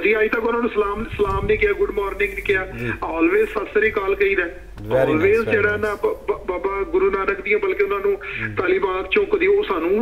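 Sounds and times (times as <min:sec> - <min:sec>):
person talking over telephone: 0:02.2 - 0:04.1, 0:04.8 - 0:09.3.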